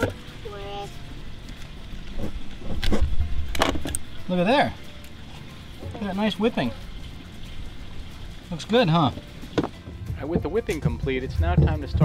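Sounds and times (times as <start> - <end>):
rope rustling and knocking: 9.1 - 12.0.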